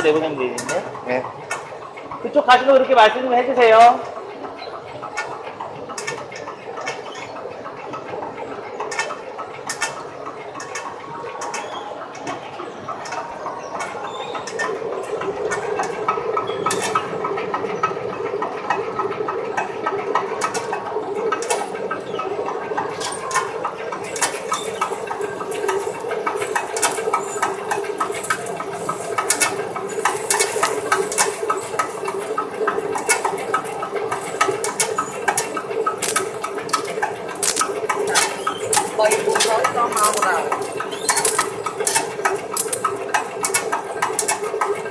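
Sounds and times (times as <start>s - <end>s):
machine humming: 0.0s - 44.9s
small irregular clicks: 22.7s - 44.9s.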